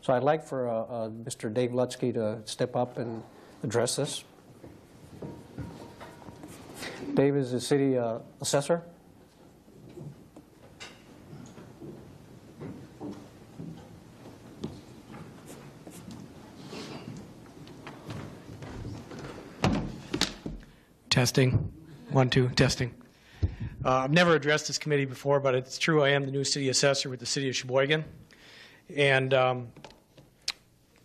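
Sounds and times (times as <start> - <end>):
faint rustling and shuffling: 3.0 - 7.2, 9.2 - 20.5
person breathing: 23.1 - 23.9, 28.3 - 28.9
microphone being handled thumps: 23.4 - 23.9.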